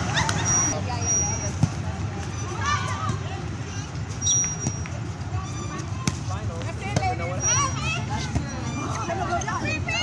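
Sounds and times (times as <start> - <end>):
crowd and player voices: 0.0 - 10.0
shoe squeak: 0.4 - 1.6, 2.2 - 2.8, 3.7 - 6.0, 7.0 - 9.6.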